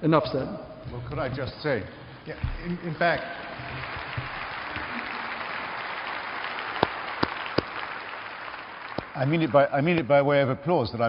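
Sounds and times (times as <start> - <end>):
audience applauding: 2.3 - 10.1
loud single claps: 3.7 - 9.2.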